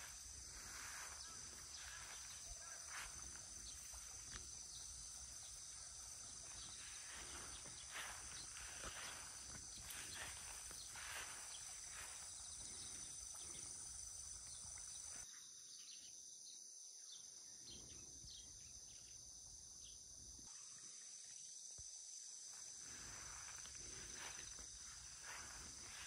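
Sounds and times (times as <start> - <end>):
insects chirring: 0.0 - 26.0.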